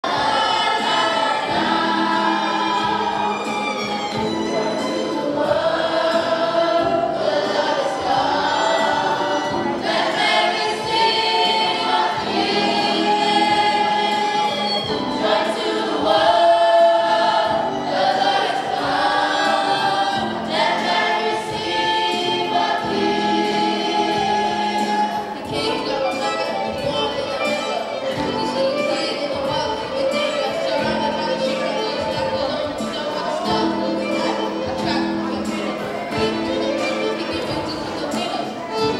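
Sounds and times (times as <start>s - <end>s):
children's choir singing: 0.0s - 38.9s
violin playing: 0.0s - 38.9s.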